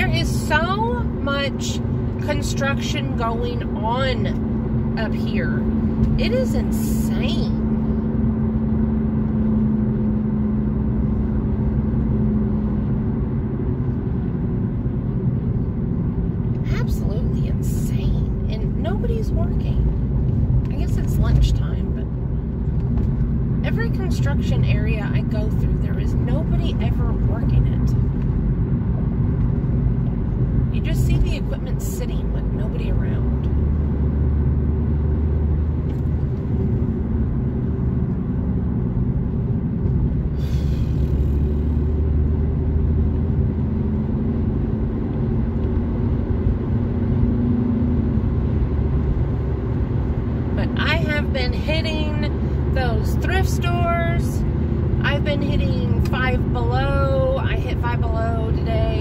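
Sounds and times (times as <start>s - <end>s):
car engine rumble: 0.0s - 59.0s
tyre road noise: 0.0s - 59.0s.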